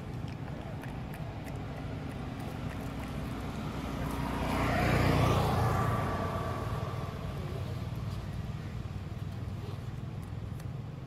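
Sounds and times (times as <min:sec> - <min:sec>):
motor vehicle passing by: 0:00.0 - 0:11.0.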